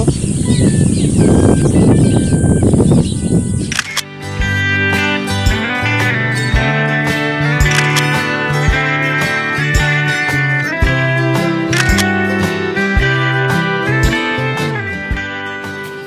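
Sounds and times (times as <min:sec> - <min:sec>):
swallows twittering: 0:00.0 - 0:03.7
wind noise on microphone: 0:00.0 - 0:04.0
background music with beat: 0:04.0 - 0:16.0.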